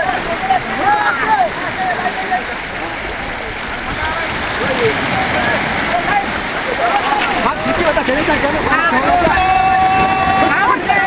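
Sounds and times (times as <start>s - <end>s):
surf washing: 0.0s - 11.0s
fishermen calling out: 8.6s - 11.0s.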